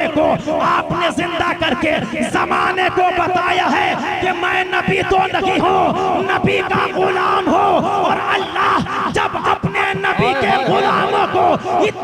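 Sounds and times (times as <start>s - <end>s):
man declaiming over pa system: 0.0s - 12.0s.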